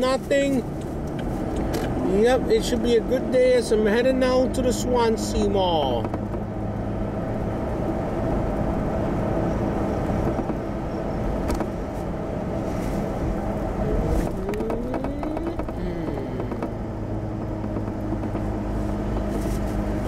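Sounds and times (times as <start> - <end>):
car engine hum: 0.0 - 20.0
road noise: 0.0 - 20.0.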